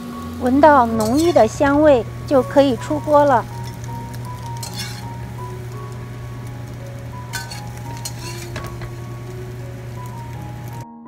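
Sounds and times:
light sizzle from hot pan: 0.0 - 10.8
spatula clinking on ceramic plate: 1.0 - 1.4, 4.5 - 5.0, 7.3 - 9.0
spatula scraping a steel pan: 1.0 - 1.6, 4.5 - 5.3, 7.3 - 9.0.

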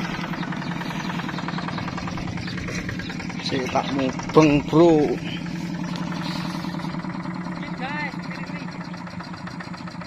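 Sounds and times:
diesel hand tractor engine running: 0.0 - 10.0.

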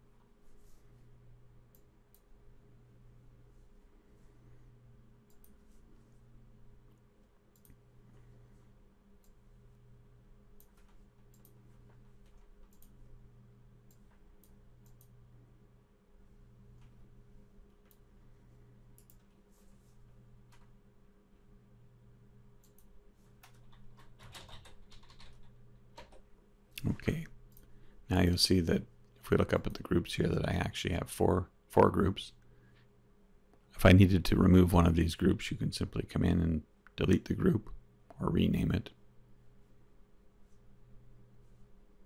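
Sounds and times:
low steady hum: 0.0 - 42.0
computer mouse clicks: 5.2 - 5.7, 6.9 - 7.8, 9.2 - 9.4, 10.6 - 13.0, 13.9 - 15.2, 18.9 - 19.4, 22.6 - 26.3
computer keyboard typing: 22.6 - 26.3.

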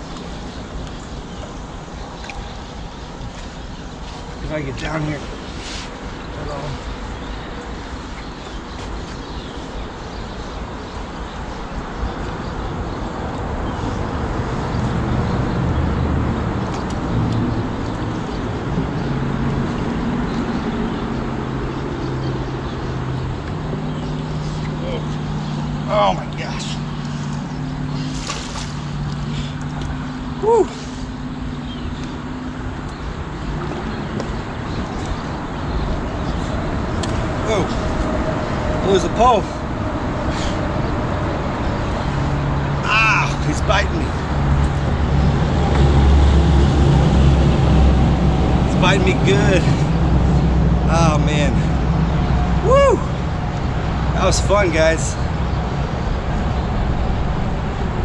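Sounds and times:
road traffic hum: 0.0 - 58.0.

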